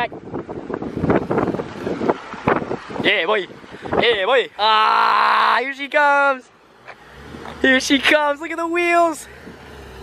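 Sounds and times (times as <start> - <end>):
wind buffeting microphone: 0.0 - 4.6.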